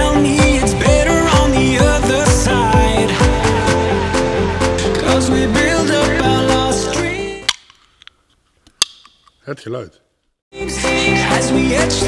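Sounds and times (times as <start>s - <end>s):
background music: 0.0s - 7.8s, 10.6s - 12.0s
drinks can cracking open: 7.4s - 9.4s
finger clicking can ring-pull: 7.5s - 9.4s.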